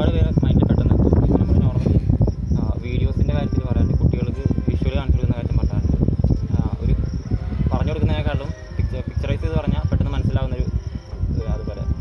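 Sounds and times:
high-pitched insect drone: 0:00.0 - 0:12.0
man talking: 0:00.0 - 0:12.0.

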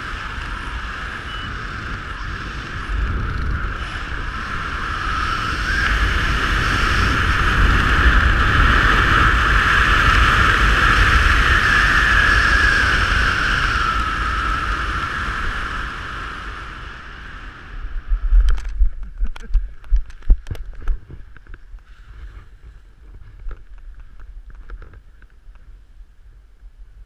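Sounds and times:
wind rushing over microphone: 0:00.0 - 0:27.0.

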